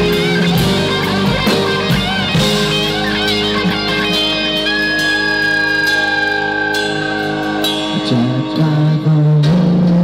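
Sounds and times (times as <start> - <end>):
electric guitar long high note: 0.0 - 10.0
live rock band playing: 0.0 - 10.0.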